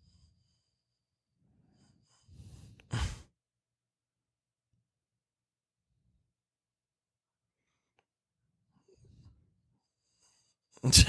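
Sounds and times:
person breathing out heavily: 0:01.9 - 0:03.3.

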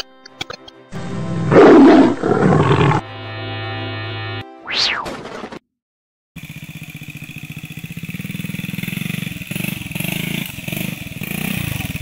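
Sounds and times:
loud roar: 0:01.5 - 0:03.0.

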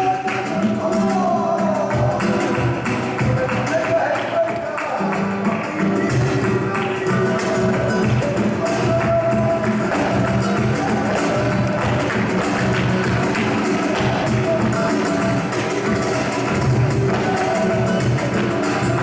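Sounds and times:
flamenco guitars: 0:00.0 - 0:19.0
handclaps: 0:00.0 - 0:19.0.

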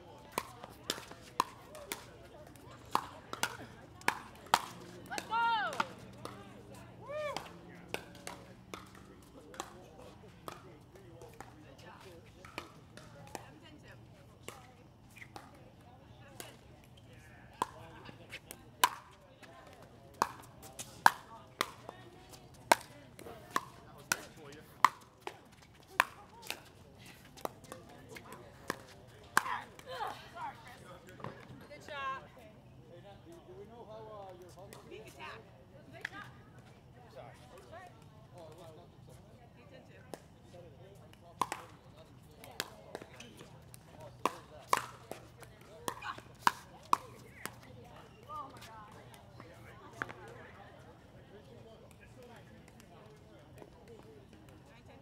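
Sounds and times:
paddles hitting plastic ball: 0:00.3 - 0:06.7, 0:07.3 - 0:09.8, 0:41.4 - 0:41.8, 0:42.4 - 0:47.7.

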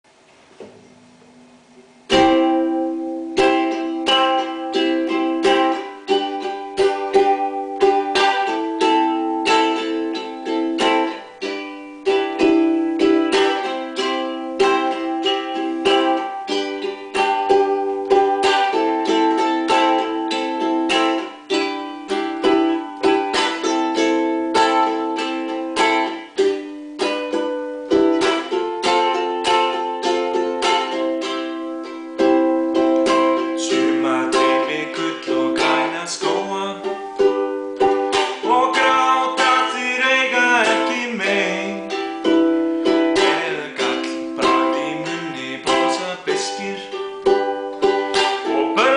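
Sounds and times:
ukulele strummed: 0:00.1 - 0:48.9.

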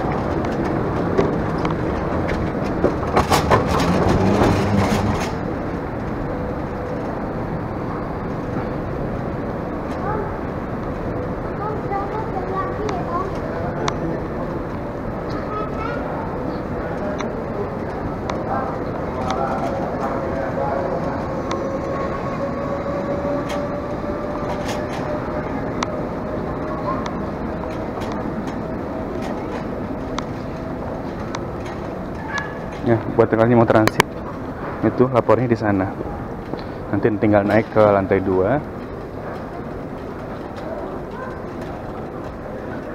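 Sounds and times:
luggage trolley rolling rattle: 0:00.0 - 0:42.9.

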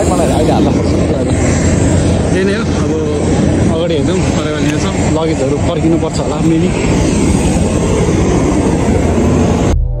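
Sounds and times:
aircraft engines roaring: 0:00.0 - 0:10.0.

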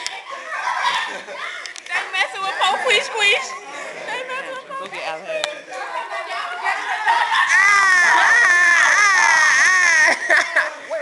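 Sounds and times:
person wailing high-pitched: 0:07.5 - 0:10.3.

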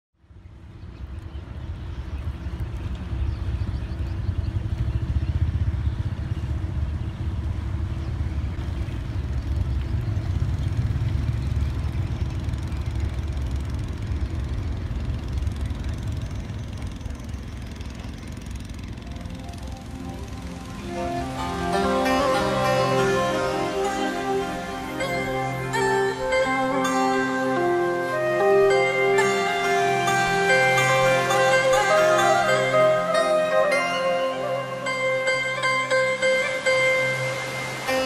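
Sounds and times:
boat engine low rumble: 0:00.2 - 0:38.0.

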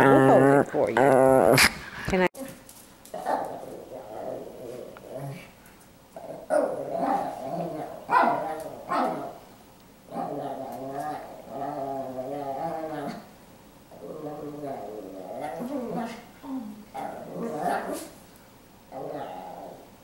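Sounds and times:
small dog growling: 0:00.0 - 0:01.7, 0:03.1 - 0:05.6, 0:06.2 - 0:09.4, 0:10.1 - 0:13.3, 0:13.9 - 0:18.2, 0:18.9 - 0:20.0.

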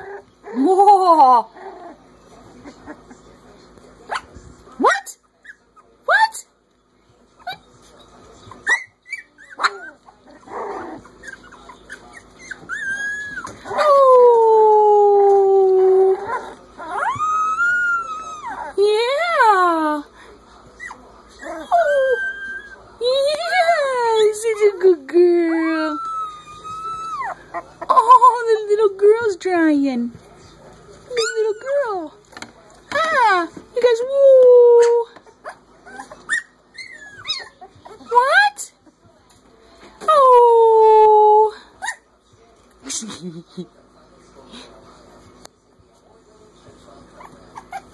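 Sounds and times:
puppies yipping: 0:07.4 - 0:14.0, 0:16.1 - 0:18.8, 0:25.5 - 0:28.7, 0:31.1 - 0:31.9, 0:34.8 - 0:38.2, 0:47.1 - 0:47.9
puppies howling: 0:08.6 - 0:19.4, 0:20.8 - 0:24.8, 0:25.5 - 0:28.7, 0:31.1 - 0:32.1, 0:34.7 - 0:38.1.

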